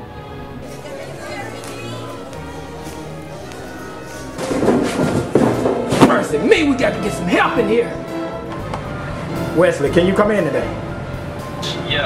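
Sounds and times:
classical orchestral music: 0.0 - 12.0.

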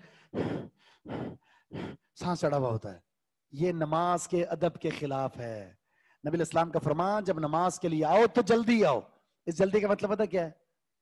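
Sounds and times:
man panting heavily: 0.0 - 2.2.

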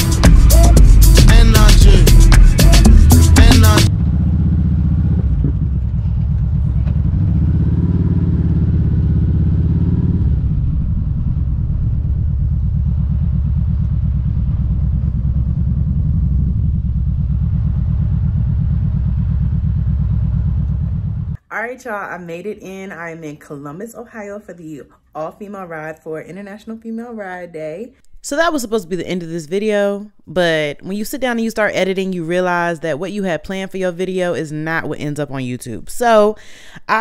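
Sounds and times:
motorcycle engine running slowly: 0.0 - 21.4.

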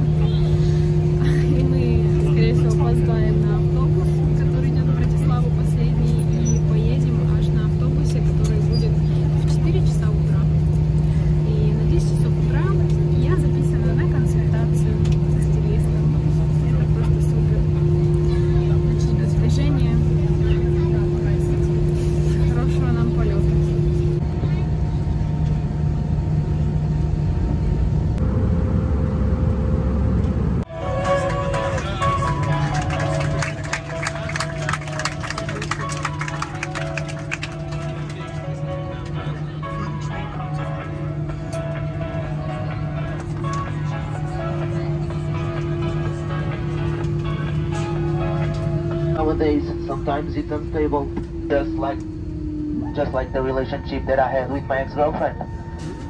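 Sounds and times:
faint passenger voices: 0.0 - 28.0, 30.7 - 56.0
airliner cabin droning hum: 0.0 - 56.0
music: 30.7 - 50.4.

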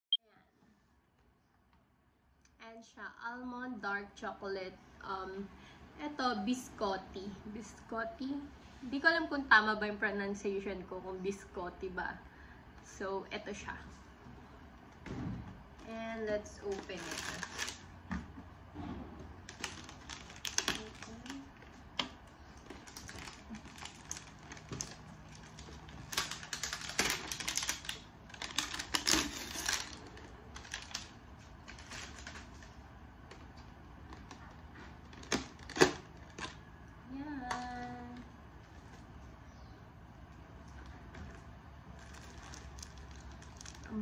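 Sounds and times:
plastic packaging crinkling: 16.0 - 18.0, 19.4 - 36.7, 40.6 - 44.0.

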